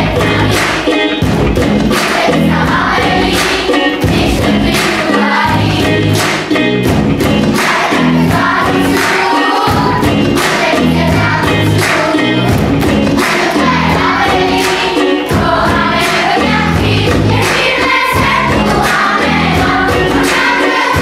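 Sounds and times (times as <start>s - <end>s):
children singing together: 0.0s - 6.6s, 7.4s - 21.0s
backing track with steady beat: 0.0s - 21.0s.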